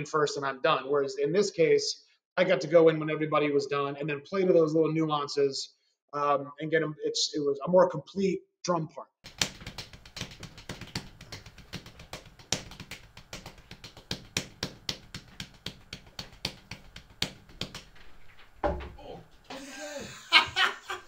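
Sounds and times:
drumsticks tapping on drums: 0:09.3 - 0:18.0.

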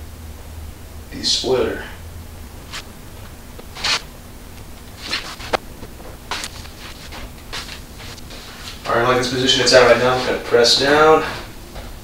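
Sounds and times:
hands rustling and rubbing: 0:02.6 - 0:08.9.

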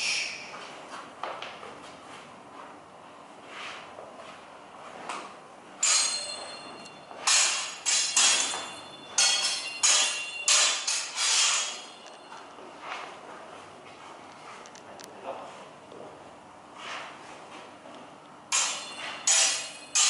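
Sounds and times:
steel swords clashing: 0:05.8 - 0:12.3, 0:18.5 - 0:20.0.

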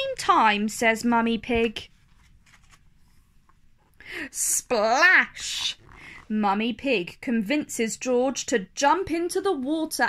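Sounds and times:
paper page turning: 0:01.9 - 0:03.0.

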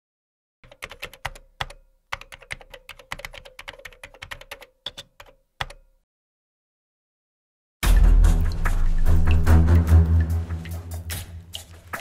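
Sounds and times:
computer keyboard typing: 0:00.6 - 0:06.0.

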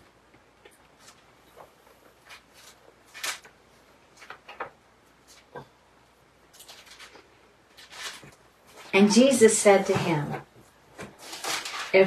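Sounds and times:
paper pages turning: 0:00.8 - 0:05.6, 0:06.5 - 0:09.0, 0:11.0 - 0:12.0.

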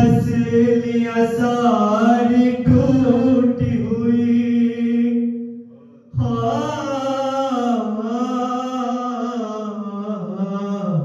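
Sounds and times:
male voices chanting a lament: 0:00.0 - 0:11.0.

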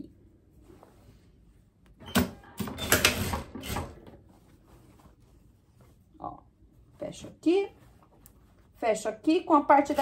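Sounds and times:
fabric rustling: 0:00.3 - 0:02.0, 0:04.0 - 0:10.0.

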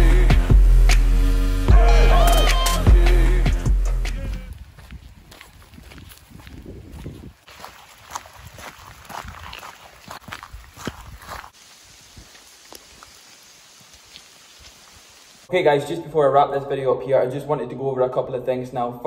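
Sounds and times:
footsteps on wet grass: 0:04.3 - 0:15.5
small scuffs and clicks: 0:12.2 - 0:14.9.

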